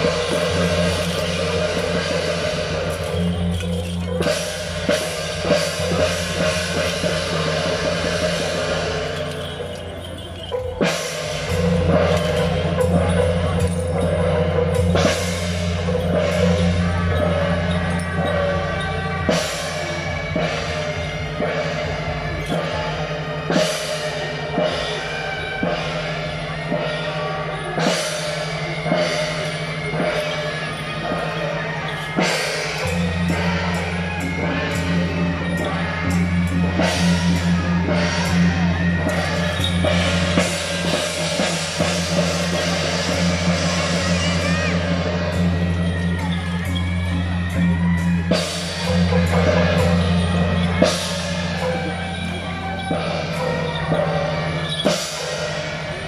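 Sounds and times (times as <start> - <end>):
brass cymbals clashing: 0.0 - 56.0
drums: 0.0 - 56.0.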